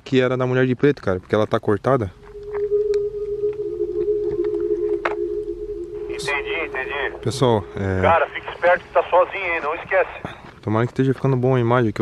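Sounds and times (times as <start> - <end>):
low two-tone drone: 1.9 - 9.1.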